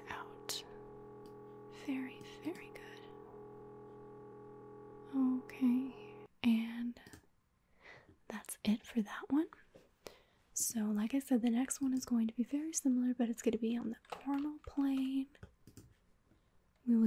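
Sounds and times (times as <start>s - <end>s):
mri scanner humming: 0.0s - 6.3s
breathing: 7.7s - 8.2s, 10.0s - 10.5s.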